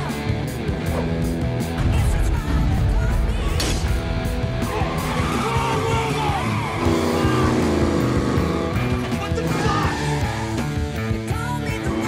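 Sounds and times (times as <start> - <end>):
guitar-driven soundtrack music: 0.0 - 12.0
car engines running: 4.7 - 11.4.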